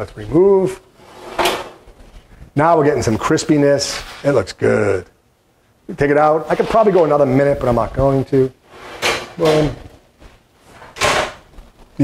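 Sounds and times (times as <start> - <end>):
oven door closing: 1.0 - 1.9, 8.7 - 9.9, 10.8 - 11.5.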